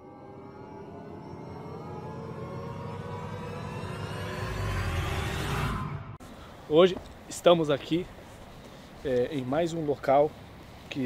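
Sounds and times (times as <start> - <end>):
tones gliding upward: 0.0 - 6.2
low rumble: 0.0 - 6.5.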